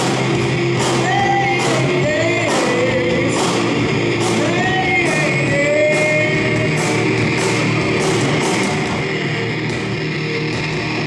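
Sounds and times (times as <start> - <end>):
drum kit with cymbal crashes: 0.0 - 11.0
electric guitar: 0.0 - 11.0
person singing sliding notes: 0.8 - 9.4.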